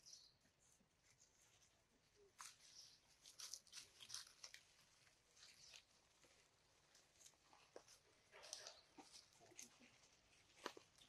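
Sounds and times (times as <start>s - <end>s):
dry leaves crackling and rustling: 2.4s - 11.0s.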